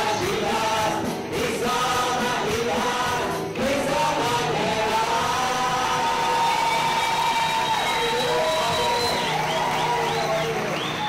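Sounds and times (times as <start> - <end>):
congregation singing: 0.0 - 11.0
worship band playing: 0.0 - 11.0.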